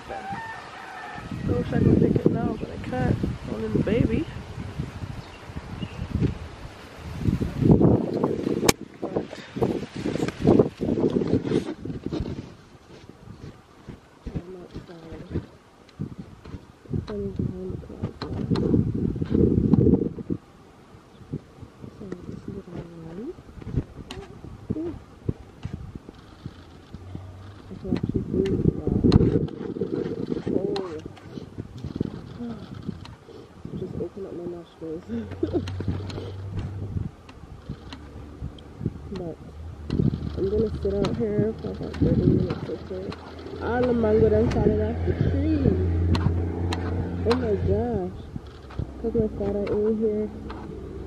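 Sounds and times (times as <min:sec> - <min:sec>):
wind buffeting microphone: 0:00.0 - 0:51.0
low hum: 0:16.3 - 0:51.0
woman laughing: 0:35.1 - 0:36.0
faint clicks: 0:35.2 - 0:44.6.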